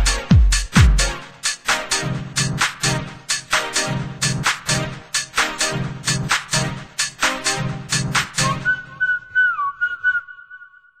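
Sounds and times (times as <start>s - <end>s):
whistled dance music hook: 0.0s - 11.0s.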